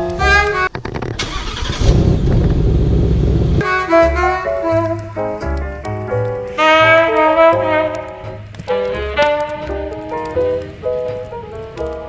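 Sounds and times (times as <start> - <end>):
jazz music: 0.0 - 1.6, 3.6 - 12.0
car engine rumbling: 0.6 - 3.6.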